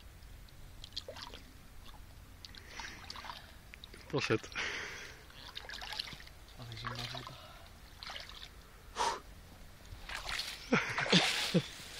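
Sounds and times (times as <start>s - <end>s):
hands splashing water: 5.4s - 7.4s.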